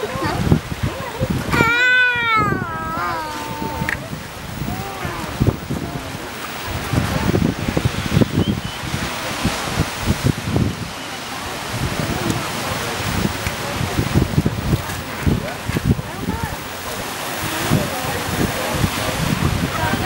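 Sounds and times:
faint people's voices: 0.0s - 20.0s
sea waves washing: 0.0s - 20.0s
wind gusting on microphone: 0.0s - 20.0s.

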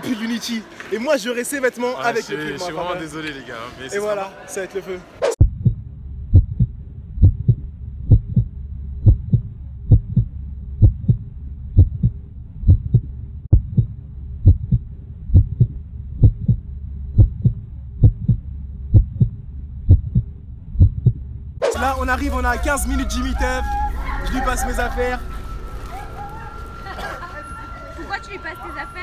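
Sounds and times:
heartbeat double thump: 5.4s - 21.7s.

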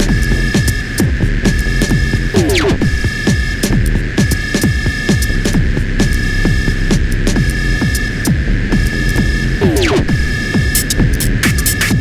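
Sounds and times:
high synthesizer drone: 1.6s - 3.8s, 6.1s - 11.3s.

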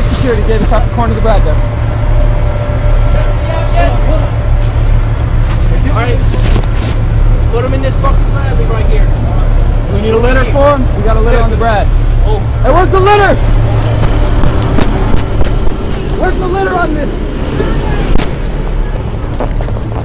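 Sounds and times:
low engine rumble: 0.0s - 20.0s.

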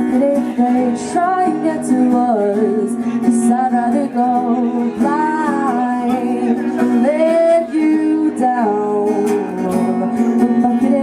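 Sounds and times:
acoustic guitar: 0.0s - 11.0s
woman singing into microphone: 0.0s - 11.0s.

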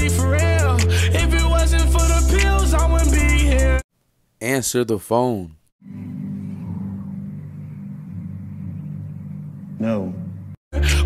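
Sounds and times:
steady low hum: 5.8s - 10.6s.

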